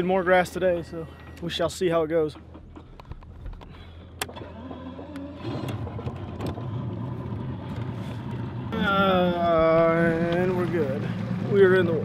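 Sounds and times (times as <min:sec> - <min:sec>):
outboard motor running: 0:00.0 - 0:12.0
wind: 0:00.0 - 0:12.0
water rushing: 0:05.0 - 0:12.0.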